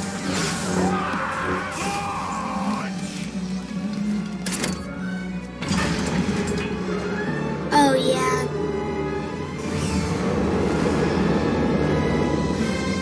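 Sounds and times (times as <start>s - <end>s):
dramatic film music: 0.0s - 13.0s.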